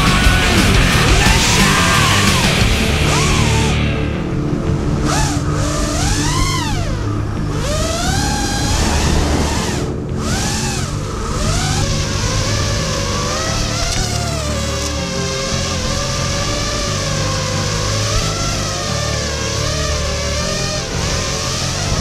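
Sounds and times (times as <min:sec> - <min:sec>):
drone motors whining: 0:00.0 - 0:22.0.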